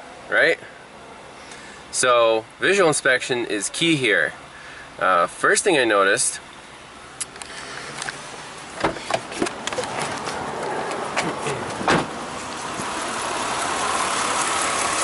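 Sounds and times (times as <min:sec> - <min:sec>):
engine idling: 0:06.2 - 0:15.0
handling knocks and clicks: 0:08.8 - 0:12.1.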